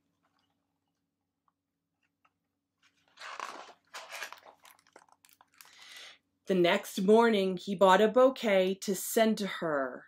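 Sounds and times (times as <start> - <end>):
book pages turning: 2.0 - 5.9.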